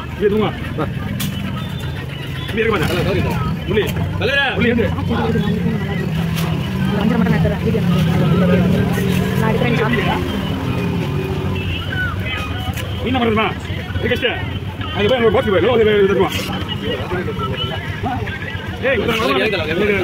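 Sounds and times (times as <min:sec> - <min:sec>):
voices talking: 0:00.0 - 0:20.0.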